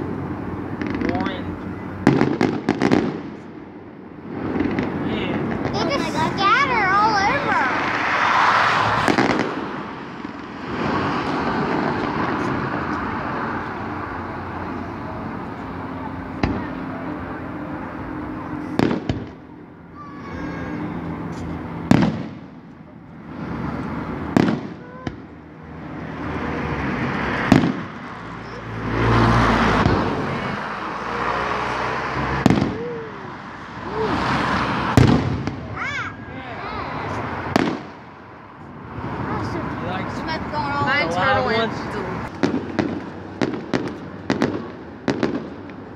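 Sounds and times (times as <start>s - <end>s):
crowd noise: 0.0s - 45.9s
fireworks bursting with sharp bangs: 0.6s - 13.2s, 16.3s - 16.9s, 18.4s - 26.2s, 26.9s - 38.4s, 41.8s - 45.9s.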